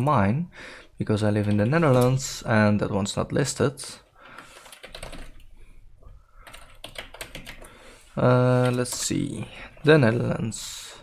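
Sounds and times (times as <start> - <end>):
computer keyboard typing: 1.4 - 2.3, 4.4 - 5.5, 6.4 - 7.8, 8.4 - 9.5.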